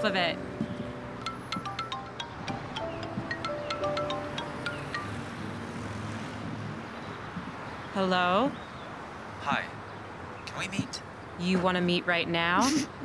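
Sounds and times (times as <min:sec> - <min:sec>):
phone ringtone chiming melody: 0:00.0 - 0:05.7.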